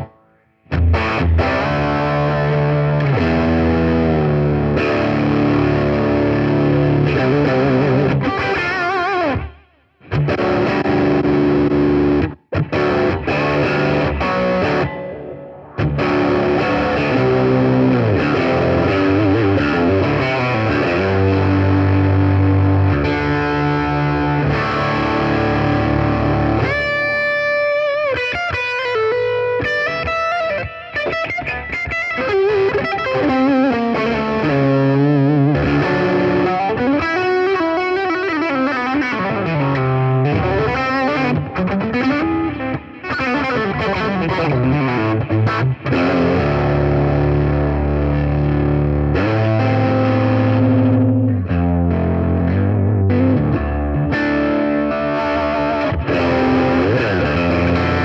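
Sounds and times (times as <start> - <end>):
distorted electric guitar: 0.0 - 58.0.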